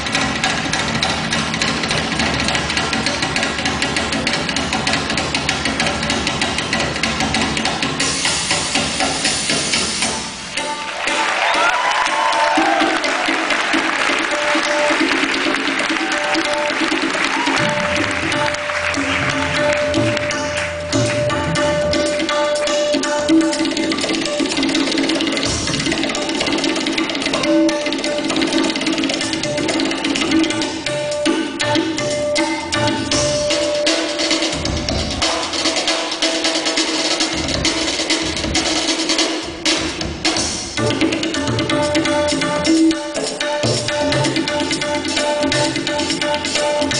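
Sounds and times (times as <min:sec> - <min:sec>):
fast hand drumming: 0:00.0 - 0:10.3, 0:11.0 - 0:46.9
tabla playing fast strokes: 0:00.0 - 0:46.9.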